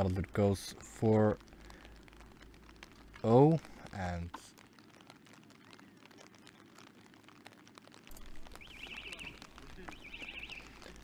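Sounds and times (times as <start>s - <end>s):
light rain pattering: 0.0s - 11.0s
distant murmured voices: 8.1s - 11.0s
high warbling trills: 8.4s - 10.8s.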